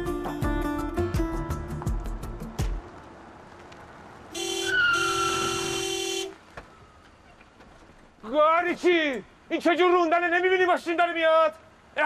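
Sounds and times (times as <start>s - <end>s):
car horn honking: 4.3s - 6.4s
tyre squeal: 4.4s - 6.0s.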